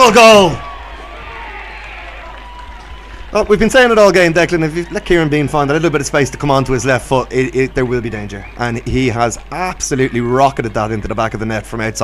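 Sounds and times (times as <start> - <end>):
distant voices and shouts: 0.0 - 12.0.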